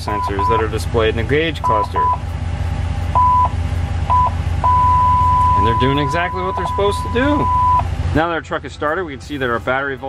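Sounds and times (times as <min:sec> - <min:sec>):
parking sensor beeps: 0:00.0 - 0:00.8, 0:01.6 - 0:02.2, 0:03.1 - 0:07.9
steady parking sensor tone: 0:00.0 - 0:00.8, 0:01.6 - 0:02.3, 0:03.1 - 0:07.9.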